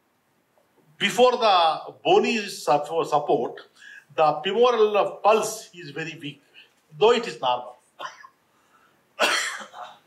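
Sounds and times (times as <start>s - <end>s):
man coughing: 8.0s - 8.4s, 9.2s - 10.0s.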